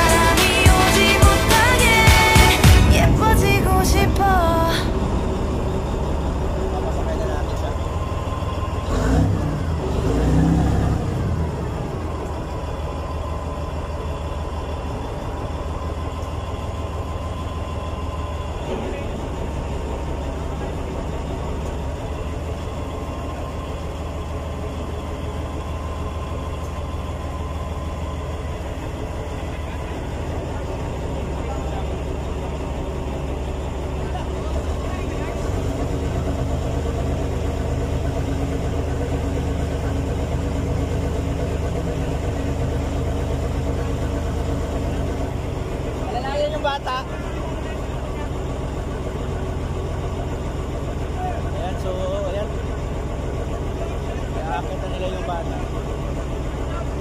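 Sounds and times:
indistinct voices: 0:00.0 - 0:57.0
large engine idling: 0:00.0 - 0:57.0.

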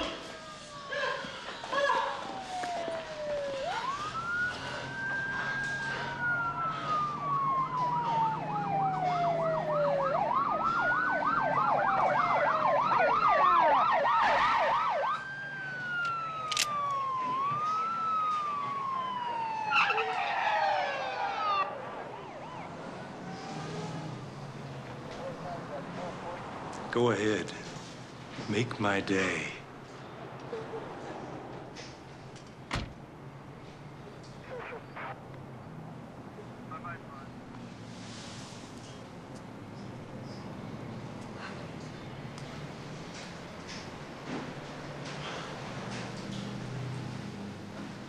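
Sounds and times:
police sirens wailing: 0:00.0 - 0:27.8, 0:33.0 - 0:37.8
siren fast yelp: 0:02.1 - 0:15.2, 0:15.9 - 0:23.2.

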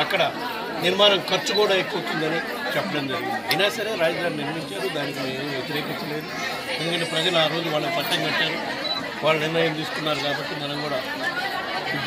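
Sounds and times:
voices chattering: 0:00.0 - 0:12.0.

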